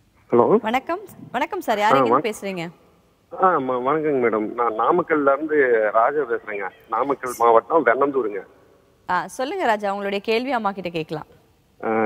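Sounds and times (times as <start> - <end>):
man talking over a telephone: 1.9 - 2.2, 3.3 - 8.4, 11.8 - 12.0.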